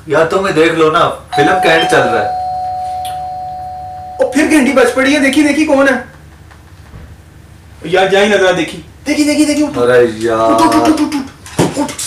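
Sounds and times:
two-tone electronic chime: 1.3s - 5.3s.

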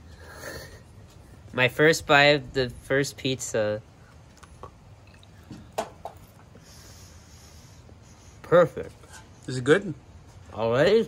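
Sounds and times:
small mouth clicks: 4.3s - 5.4s.

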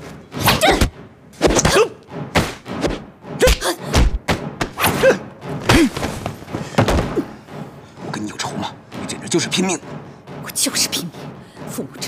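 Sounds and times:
punch and block impacts: 0.3s - 7.4s.

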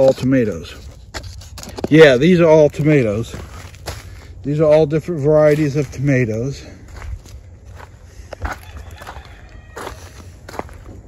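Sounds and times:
footsteps on mulch and grass: 0.0s - 11.0s.

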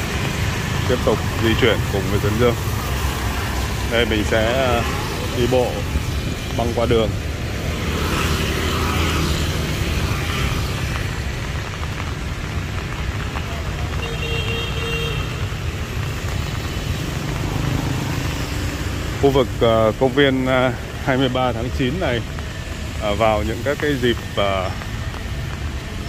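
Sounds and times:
traffic on wet road: 0.0s - 26.0s.

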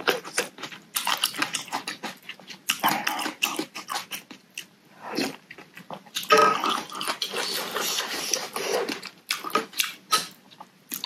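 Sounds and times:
chewing and wet mouth clicks: 0.0s - 11.0s.

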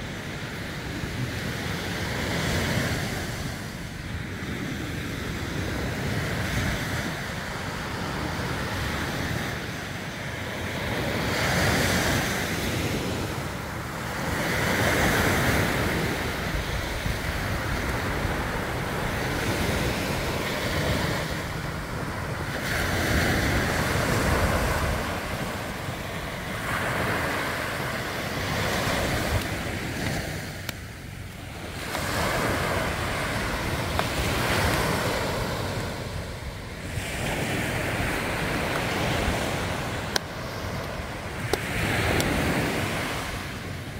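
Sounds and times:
surf breaking on beach: 0.0s - 43.9s
wind on microphone: 0.0s - 43.9s.

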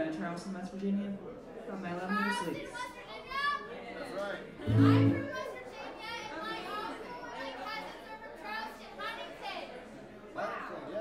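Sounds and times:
crowd talking: 1.2s - 11.0s
fiddle and acoustic guitar playing: 4.7s - 5.3s
loud low note: 4.7s - 5.3s.

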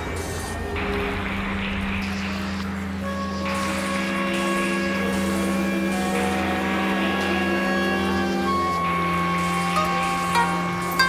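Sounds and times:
strings and winds holding notes: 0.8s - 11.0s.

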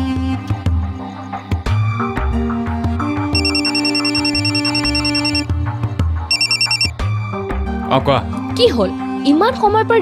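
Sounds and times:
background score music: 0.0s - 10.0s
electronic phone ringing: 3.4s - 5.5s, 6.3s - 7.0s.

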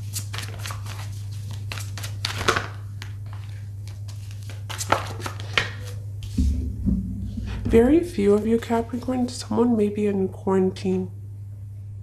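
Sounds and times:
cards rustling and clicking: 0.0s - 6.4s
steady low hum: 2.8s - 12.0s.

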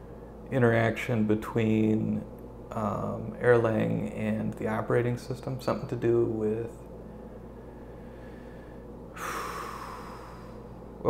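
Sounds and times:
low room hum: 0.0s - 11.0s
man's nasal exhale: 7.7s - 10.8s.

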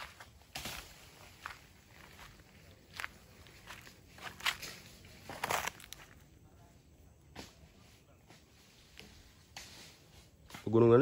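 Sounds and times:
footsteps on leafy ground: 0.0s - 6.5s.

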